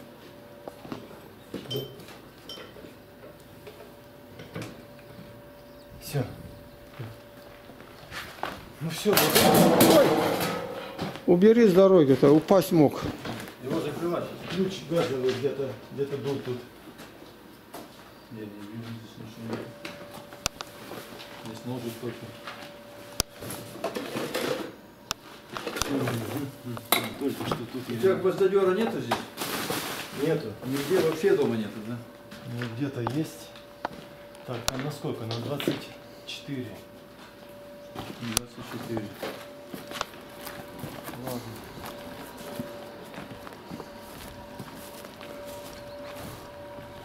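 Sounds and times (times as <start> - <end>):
faint steady hum: 0.0 - 47.0
rustle of things handled: 25.2 - 47.0.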